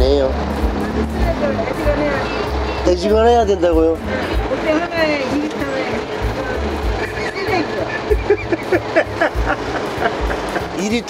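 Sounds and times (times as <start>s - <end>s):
music with low beat: 0.0s - 5.2s, 6.0s - 11.0s.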